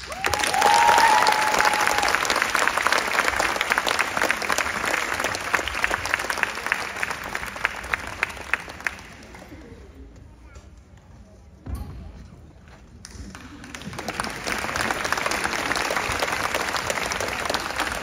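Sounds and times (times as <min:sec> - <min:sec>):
crowd cheer: 0:00.0 - 0:08.0
audience applauding: 0:00.0 - 0:09.5, 0:13.4 - 0:18.0.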